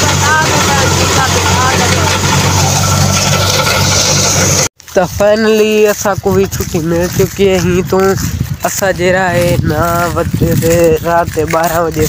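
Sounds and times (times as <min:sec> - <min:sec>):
engine humming: 0:00.0 - 0:04.8.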